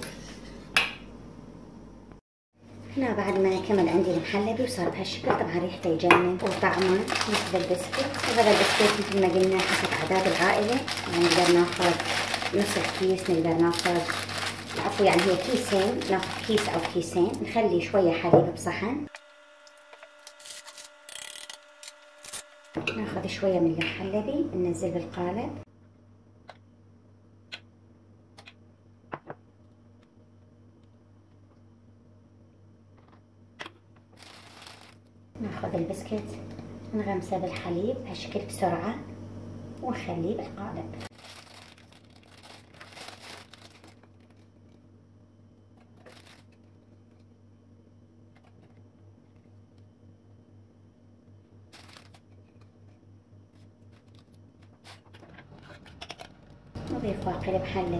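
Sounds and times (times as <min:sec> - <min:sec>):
faint steady hum: 0:00.0 - 0:57.9
biscuits crinkling and rustling: 0:06.4 - 0:17.5, 0:34.1 - 0:35.1, 0:41.0 - 0:44.8, 0:45.7 - 0:47.3, 0:51.7 - 0:57.9
kitchen items scraping on countertop: 0:54.8 - 0:56.2.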